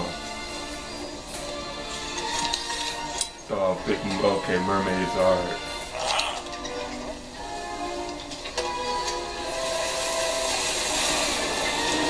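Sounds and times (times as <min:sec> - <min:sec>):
faint music tones: 0:00.0 - 0:12.0
ship rushing through water: 0:08.6 - 0:12.0.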